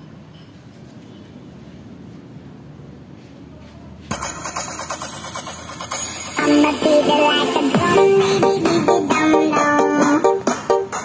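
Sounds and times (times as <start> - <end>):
loud music from box speaker: 4.1 - 11.0.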